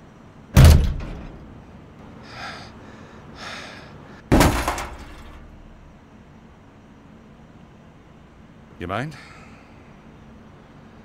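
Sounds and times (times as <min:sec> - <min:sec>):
booming blow on steel door: 0:00.6 - 0:01.7
soft breathy sounds: 0:02.2 - 0:04.3, 0:09.1 - 0:10.1.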